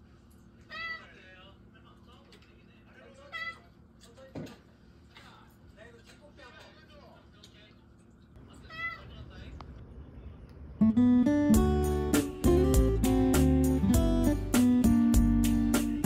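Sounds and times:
cat meowing: 0.7s - 1.1s, 3.3s - 3.7s, 8.7s - 9.1s
background music with plucked guitar: 10.8s - 16.0s.

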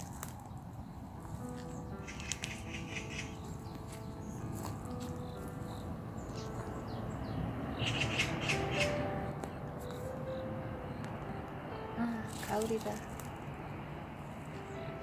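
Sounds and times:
soft background music: 0.0s - 15.0s.

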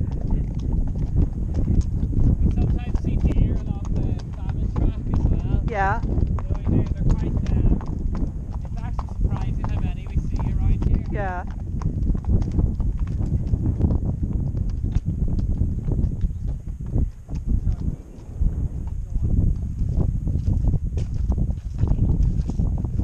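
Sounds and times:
horse hooves clopping: 0.0s - 23.0s
steady low rumble: 0.0s - 23.0s
person speaking: 11.1s - 11.4s.

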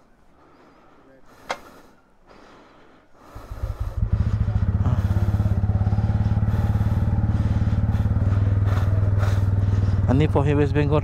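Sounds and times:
motorcycle engine idling: 3.3s - 11.0s.

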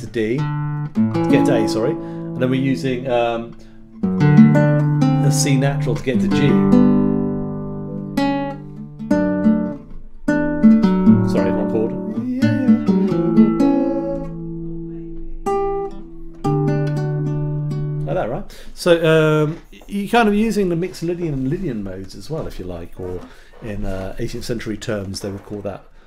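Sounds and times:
nylon-string guitar plucked chords: 0.0s - 18.4s.

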